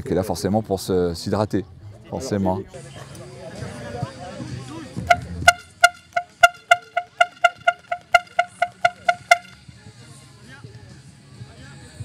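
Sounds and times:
horn tooting short high beeps: 5.1 - 9.6.

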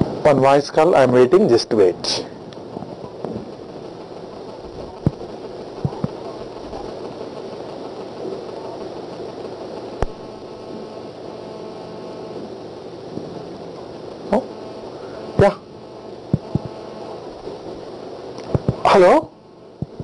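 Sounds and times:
room hum: 0.0 - 20.0.

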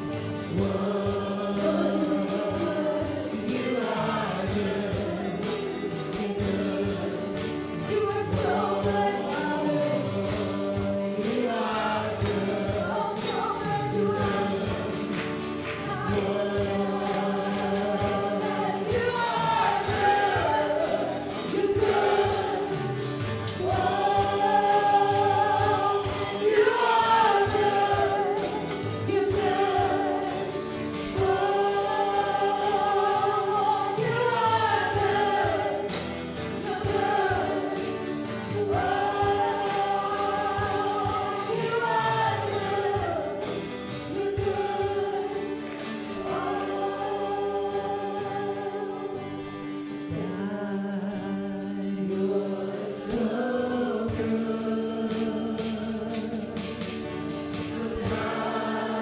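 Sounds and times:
drum kit: 0.0 - 59.0
strummed acoustic guitars: 0.0 - 59.0
women singing together: 0.0 - 59.0.

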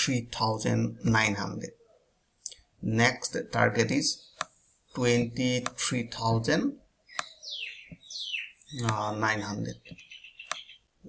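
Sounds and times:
bird chirping: 6.3 - 11.0.

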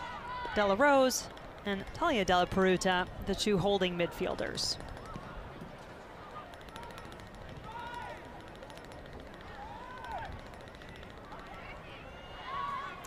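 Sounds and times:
stadium crowd murmur: 0.0 - 13.0
distant players shouting: 6.2 - 8.5, 9.4 - 13.0.

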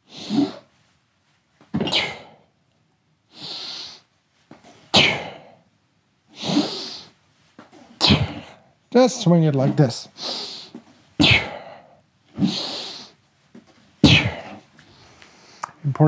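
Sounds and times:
sharp hissing exhales: 0.1 - 0.6, 6.4 - 7.2, 10.2 - 11.8, 12.4 - 13.2
soft breathing: 14.2 - 15.9.

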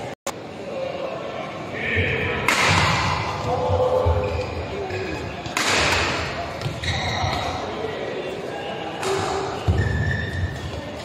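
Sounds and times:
voices in a hall: 0.0 - 11.0
rackets striking shuttlecock: 2.4 - 3.3, 5.4 - 7.5.

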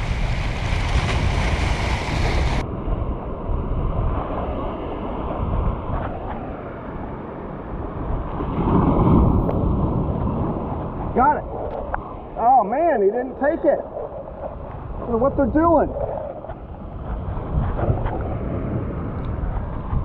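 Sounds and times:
waves breaking over rocks: 0.0 - 20.0
wind buffeting microphone: 0.0 - 20.0.

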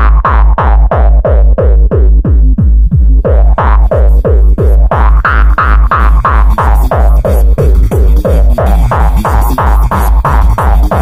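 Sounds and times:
distorted kick drum pounding: 0.0 - 11.0.

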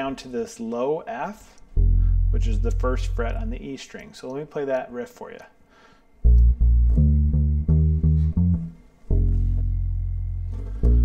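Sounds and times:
electric bass plucked riff: 1.7 - 3.6, 6.2 - 11.0.

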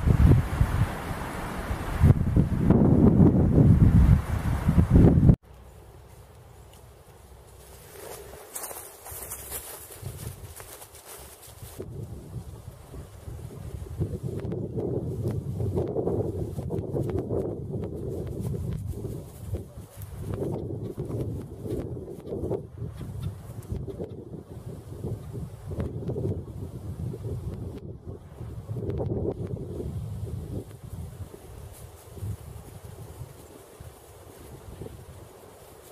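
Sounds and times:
wind buffeting microphone: 0.0 - 5.4, 8.5 - 35.9.

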